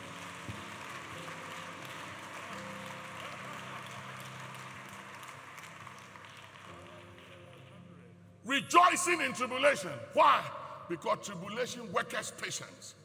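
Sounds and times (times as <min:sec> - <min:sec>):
congregation applauding: 0:00.0 - 0:07.9.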